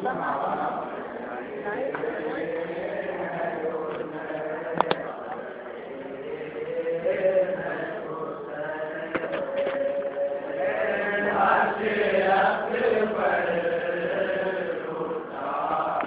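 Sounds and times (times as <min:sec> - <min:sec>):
men chanting a mourning lament: 0:00.0 - 0:16.0.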